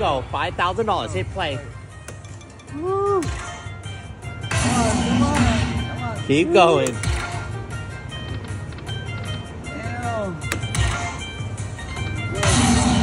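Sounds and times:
slot machine bonus music: 0:04.4 - 0:07.7, 0:10.4 - 0:13.0.

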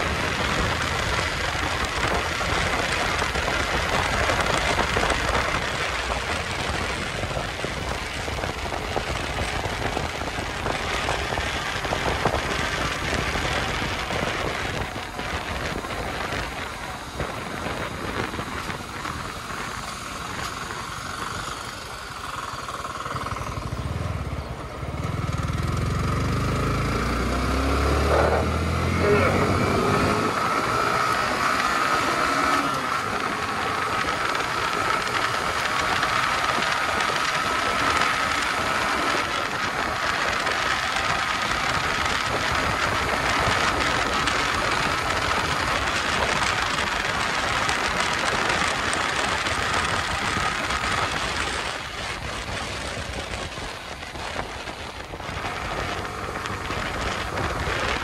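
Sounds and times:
motorcycle engine pulling away: 0:00.0 - 0:58.0
wind rushing over microphone: 0:00.0 - 0:58.0.

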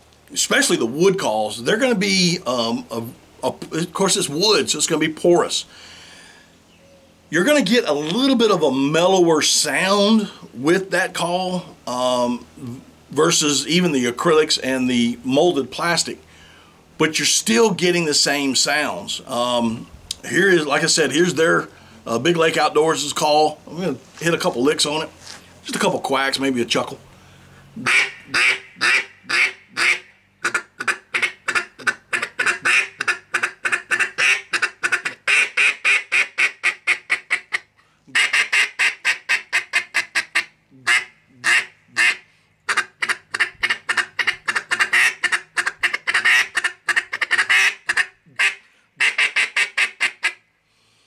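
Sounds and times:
duck call quacks and chuckles: 0:27.8 - 0:50.4.

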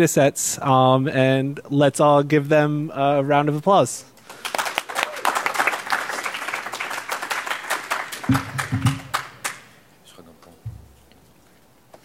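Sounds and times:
audience applause: 0:04.2 - 0:09.7.

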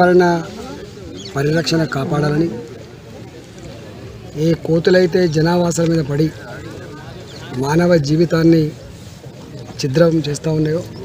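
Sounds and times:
man speaking: 0:00.0 - 0:02.7, 0:04.3 - 0:08.8.

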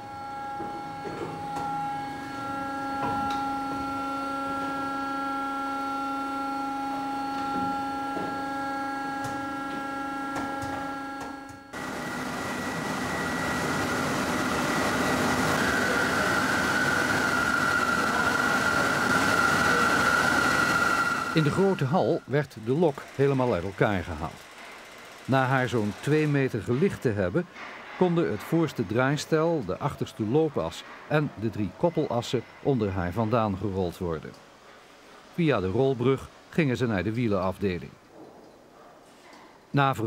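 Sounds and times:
lathe humming: 0:00.0 - 0:27.1
lathe cutting metal with high whine: 0:00.0 - 0:27.2.

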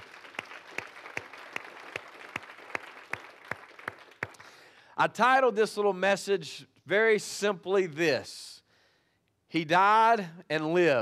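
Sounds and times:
congregation clapping: 0:00.0 - 0:04.8.

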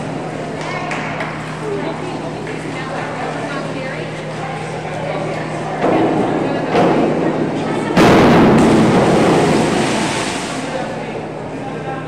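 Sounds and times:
diver splashing into water: 0:08.5 - 0:11.1.

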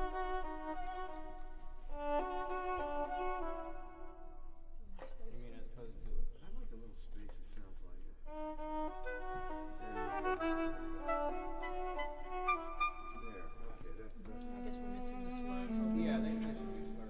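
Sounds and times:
bowed strings playing held notes: 0:00.0 - 0:05.1, 0:08.2 - 0:17.0.

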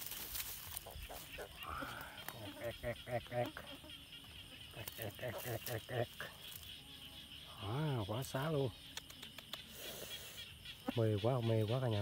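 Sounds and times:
dry leaves rustling: 0:00.0 - 0:02.1
night insects chirring: 0:00.0 - 0:12.0.

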